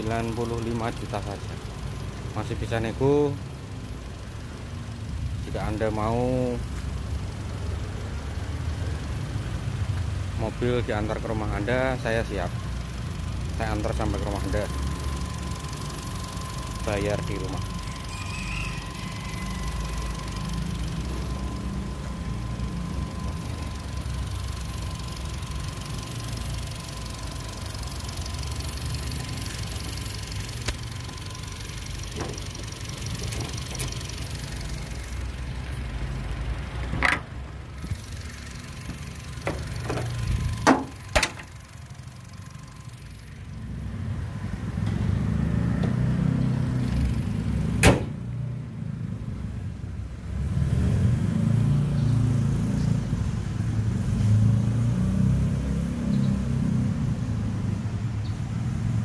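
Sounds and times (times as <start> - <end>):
car engine idling: 0.0 - 45.1
car bonnet shutting: 36.9 - 37.4, 39.4 - 41.5, 47.8 - 48.2.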